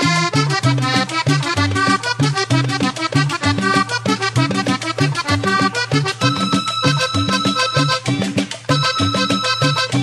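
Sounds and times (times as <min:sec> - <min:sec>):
bouncing bass line: 0:00.0 - 0:10.0
button accordion playing: 0:00.0 - 0:10.0
percussion: 0:00.0 - 0:10.0.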